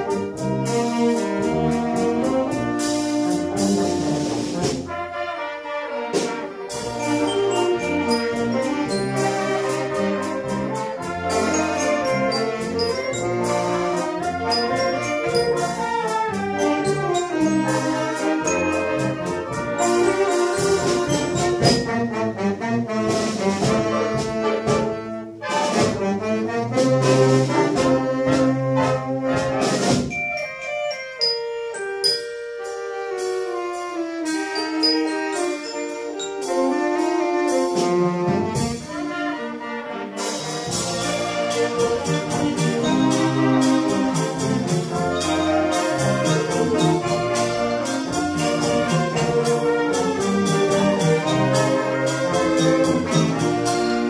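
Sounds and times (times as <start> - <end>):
brass band playing: 0.0 - 54.0.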